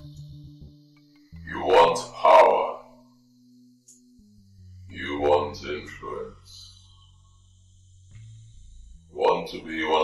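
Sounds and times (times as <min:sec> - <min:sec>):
low musical drone: 0:00.0 - 0:10.0.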